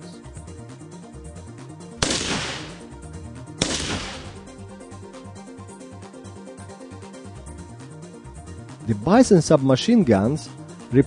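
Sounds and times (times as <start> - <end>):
background music: 0.0 - 11.0
rifle shots: 2.0 - 3.0, 3.6 - 4.7.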